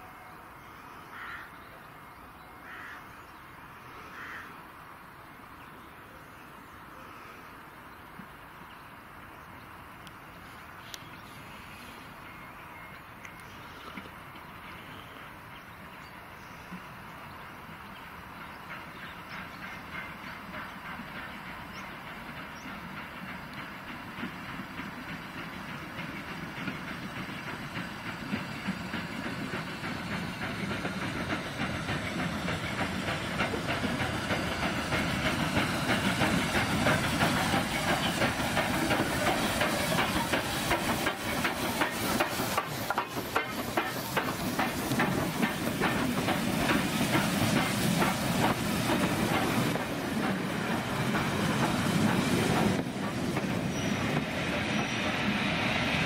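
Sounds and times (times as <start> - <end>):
train rumbling: 0.0 - 56.0
steam hissing: 16.4 - 56.0.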